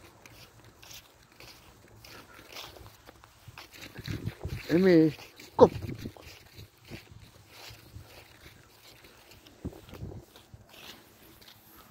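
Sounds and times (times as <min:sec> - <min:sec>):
footsteps on dry leaves: 0:00.0 - 0:11.9.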